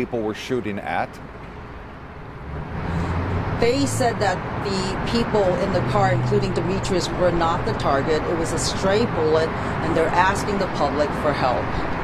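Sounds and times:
vehicle rumble: 0.4 - 12.0.

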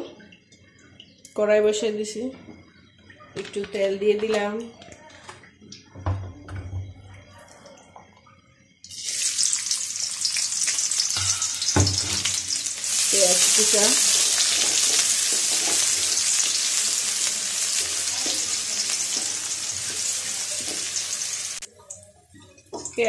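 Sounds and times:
onions sizzling in hot oil: 8.9 - 21.7.

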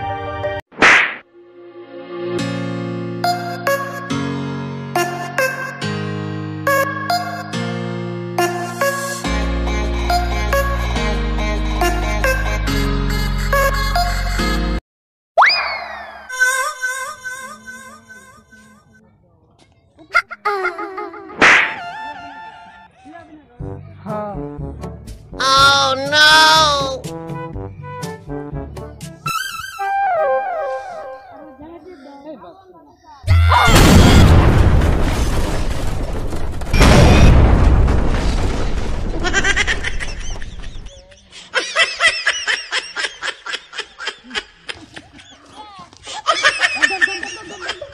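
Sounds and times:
whip-crack sound effect: 0.7 - 1.3, 21.4 - 21.9
boom rumble: 33.5 - 40.9
high-pitched snickering laugh: 39.4 - 47.9.

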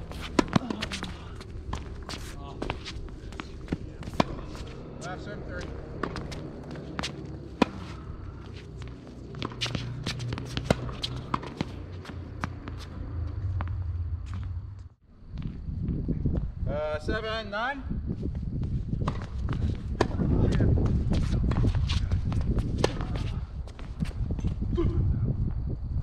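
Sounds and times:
footsteps and shoe scuffs: 0.0 - 16.5, 18.2 - 24.6
tennis ball off racket: 0.1 - 4.8, 5.9 - 8.1, 8.8 - 12.9
ball bouncing: 8.8 - 13.8.

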